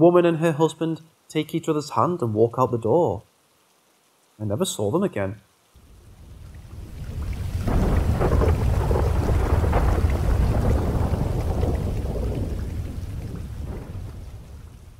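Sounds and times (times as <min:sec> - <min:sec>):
steady rain: 0:00.0 - 0:14.9
rolling thunder: 0:06.3 - 0:14.9.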